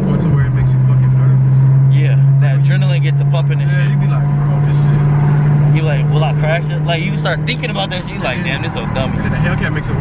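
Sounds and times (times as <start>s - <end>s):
car engine droning inside cabin: 0.0s - 10.0s.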